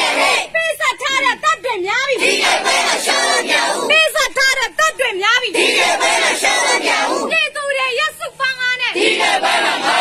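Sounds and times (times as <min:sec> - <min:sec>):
crowd shouting together: 0:00.0 - 0:01.3, 0:02.1 - 0:04.0, 0:05.5 - 0:07.4, 0:08.8 - 0:10.0.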